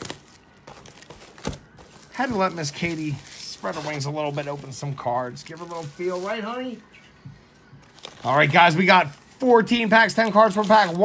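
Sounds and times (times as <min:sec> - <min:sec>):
plastic packaging crinkling: 0:00.0 - 0:06.8, 0:07.8 - 0:11.0.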